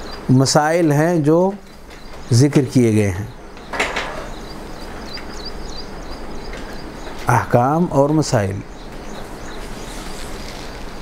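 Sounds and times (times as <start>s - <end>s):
background room noise: 0.0s - 11.0s.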